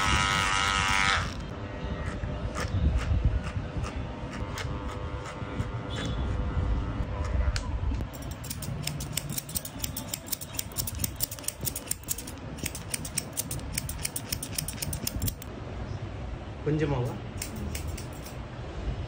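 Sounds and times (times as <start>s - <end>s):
electric hair clipper buzzing: 0.0s - 1.5s
scissors snipping hair: 8.1s - 15.5s, 17.4s - 18.4s.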